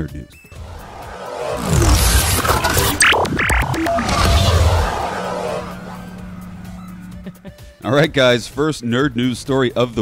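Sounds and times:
whoosh effect: 0.6 - 7.5
intro music: 0.6 - 7.7.

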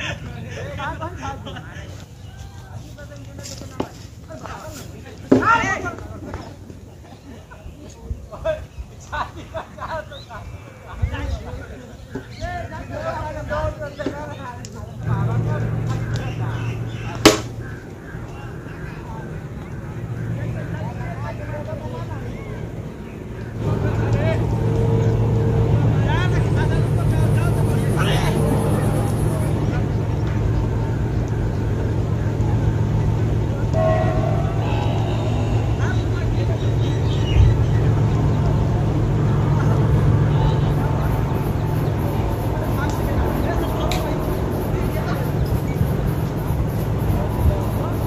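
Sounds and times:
low engine hum: 14.8 - 48.0
players calling out: 21.7 - 45.4.

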